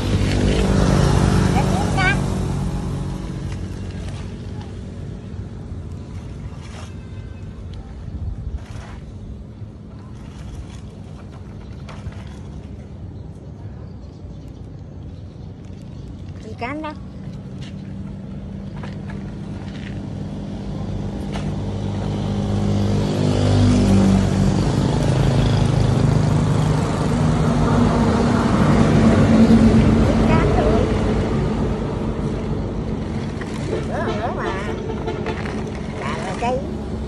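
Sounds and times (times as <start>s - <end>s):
vehicle engine passing by: 0.0s - 5.4s, 17.8s - 37.0s.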